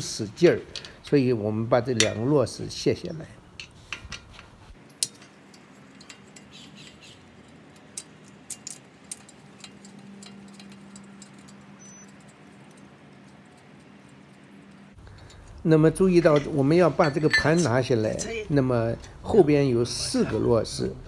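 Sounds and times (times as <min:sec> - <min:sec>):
faint steady hum: 0:00.0 - 0:21.0
light metallic clicks and taps: 0:03.6 - 0:15.6.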